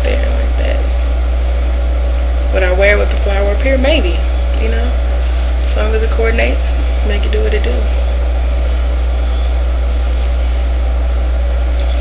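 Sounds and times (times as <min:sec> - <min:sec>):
low-pitched hum: 0:00.0 - 0:12.0.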